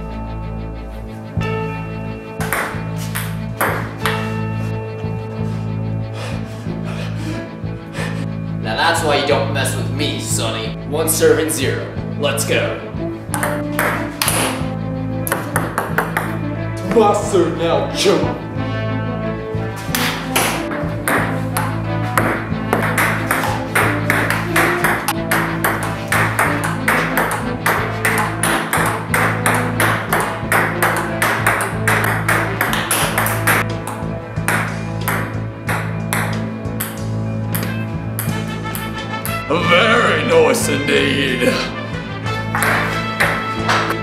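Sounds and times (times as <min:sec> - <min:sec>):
background music with bass line: 0:00.0 - 0:44.0
table tennis ball clicking: 0:22.2 - 0:38.3.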